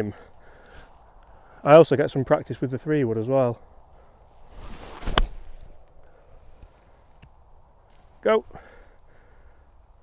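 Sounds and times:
golf club swing rush: 0:04.4 - 0:05.8
golf club striking ball: 0:05.0 - 0:05.6.

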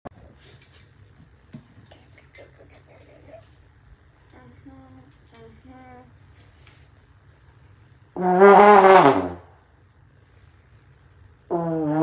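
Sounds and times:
trombone notes: 0:08.2 - 0:09.4.

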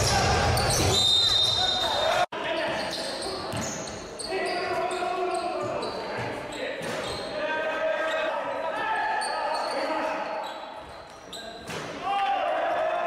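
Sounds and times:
players shouting in gym: 0:11.8 - 0:13.0.

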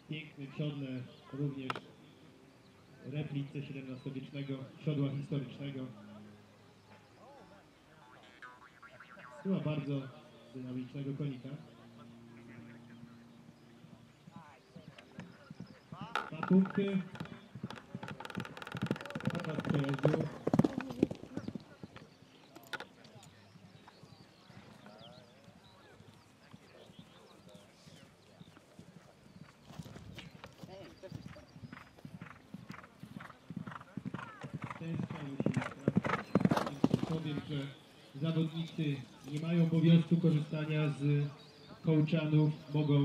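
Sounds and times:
horse hooves on grass: 0:12.4 - 0:40.6.

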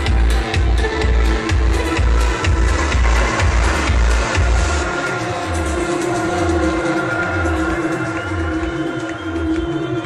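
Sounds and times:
electronic dance music: 0:00.0 - 0:10.0
kick and bass beat: 0:00.0 - 0:10.0.

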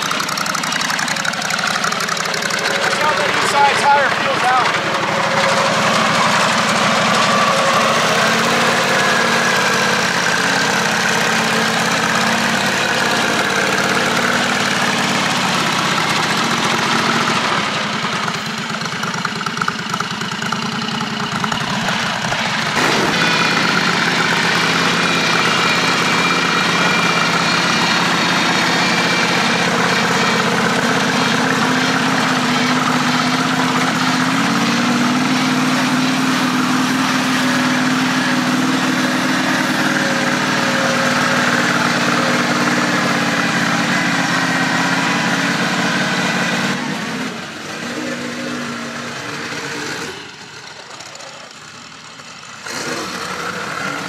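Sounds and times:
mower engine running: 0:00.0 - 0:54.0.

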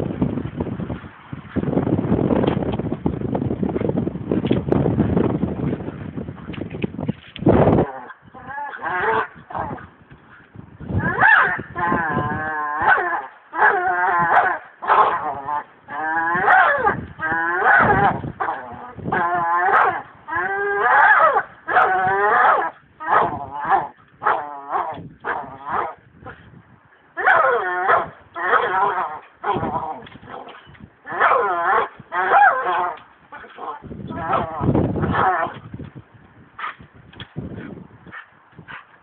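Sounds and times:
dog whining and grunting: 0:27.2 - 0:35.6.

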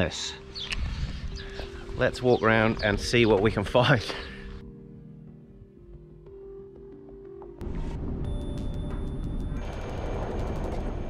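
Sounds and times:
background music: 0:00.0 - 0:11.0
wind buffeting microphone: 0:00.6 - 0:03.6.

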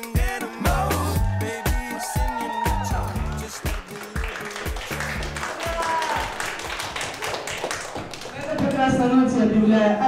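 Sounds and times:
audience clapping: 0:02.6 - 0:09.2.

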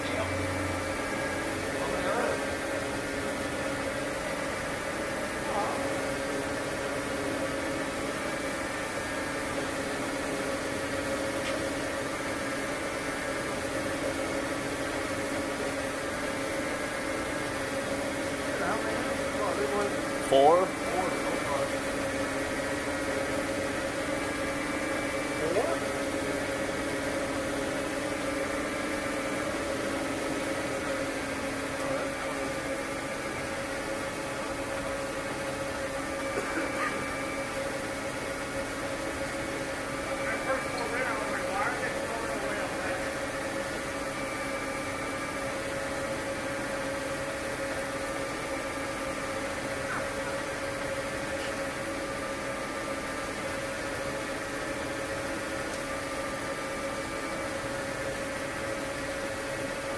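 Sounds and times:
machinery humming: 0:00.0 - 0:59.9.

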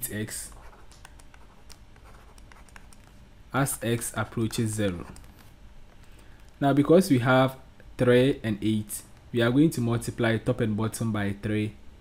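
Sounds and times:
stylus tapping and scratching tablet: 0:00.2 - 0:06.6.

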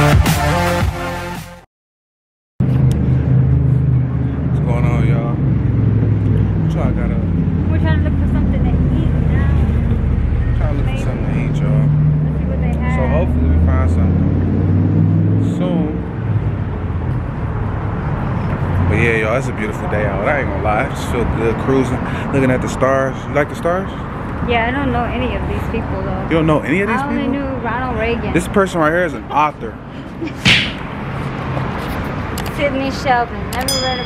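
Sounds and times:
car engines humming: 0:02.6 - 0:34.0.

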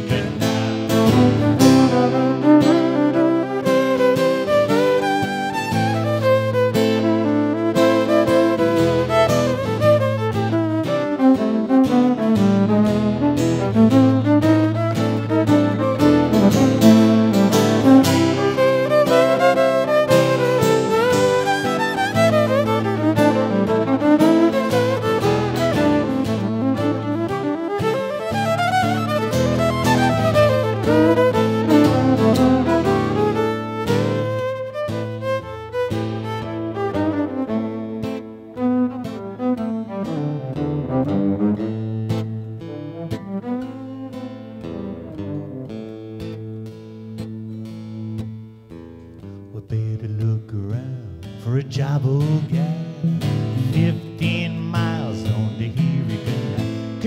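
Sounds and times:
bowed fiddle solo: 0:00.0 - 0:46.5
acoustic guitar: 0:00.0 - 0:57.0.

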